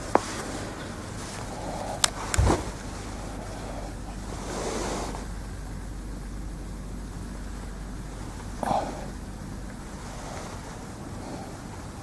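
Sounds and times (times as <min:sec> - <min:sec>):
background hiss: 0:00.0 - 0:12.0
low hum: 0:00.0 - 0:12.0.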